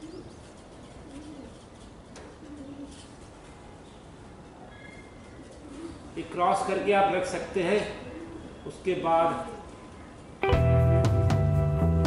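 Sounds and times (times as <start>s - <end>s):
dove cooing: 0.0s - 3.2s, 4.9s - 6.2s, 7.9s - 8.6s
faint background noise: 0.0s - 11.1s.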